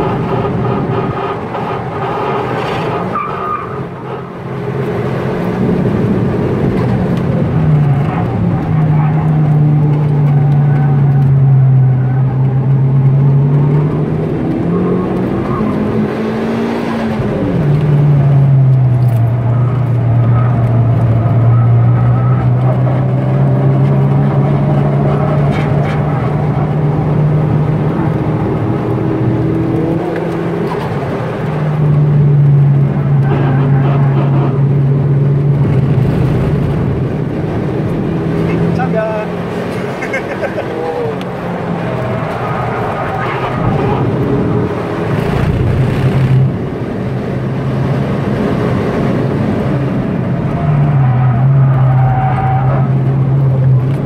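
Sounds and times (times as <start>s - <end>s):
car engine pulling hard: 0.0s - 54.0s.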